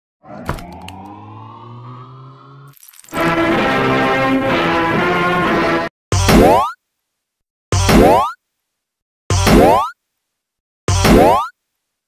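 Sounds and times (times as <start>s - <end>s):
cartoon boing sound effect: 6.2s - 6.8s, 7.8s - 8.4s, 9.3s - 10.0s, 10.9s - 11.5s.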